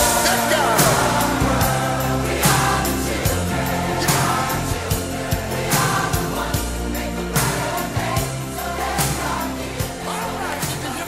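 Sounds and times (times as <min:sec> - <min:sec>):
large choir singing: 0:00.0 - 0:11.0
pop band playing: 0:00.0 - 0:11.0.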